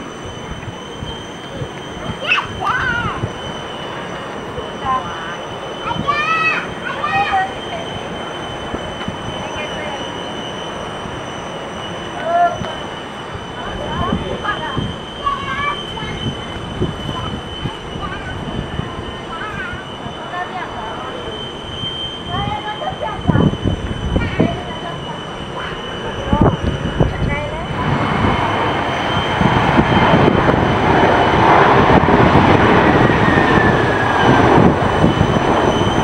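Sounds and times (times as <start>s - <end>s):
distant airplane landing: 0.0s - 36.0s
distant jet airliner rumble: 0.0s - 36.0s
thin high whine: 0.0s - 36.0s.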